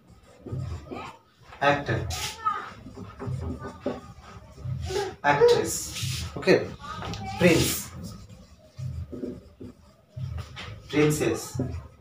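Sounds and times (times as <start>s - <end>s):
marker rubbing on whiteboard: 0.0s - 12.0s.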